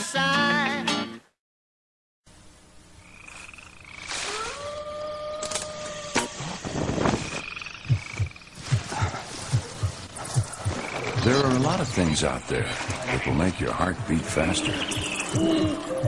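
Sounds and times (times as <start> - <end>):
high trilling night call: 3.0 - 12.5, 13.2 - 16.0
long animal cry: 4.0 - 9.2
pounding heartbeat: 7.8 - 11.4, 13.9 - 16.0.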